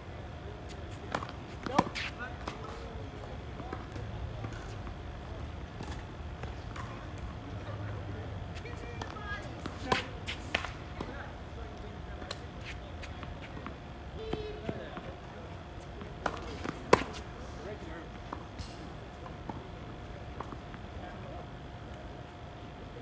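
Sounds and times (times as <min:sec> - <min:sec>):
tennis balls struck by rackets: 0:01.0 - 0:02.7, 0:08.9 - 0:11.2.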